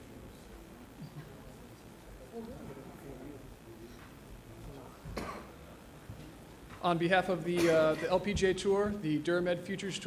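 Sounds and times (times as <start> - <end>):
person clearing throat: 5.1 - 5.6
man speaking: 6.8 - 10.0.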